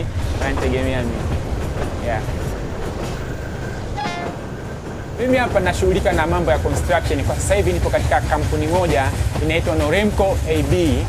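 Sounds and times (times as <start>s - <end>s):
train wheels rumbling on track: 0.0s - 11.0s.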